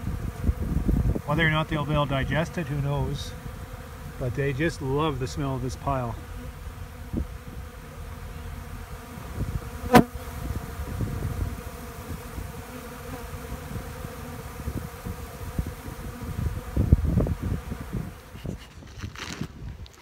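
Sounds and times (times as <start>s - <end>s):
honey bees buzzing: 0.0s - 19.0s.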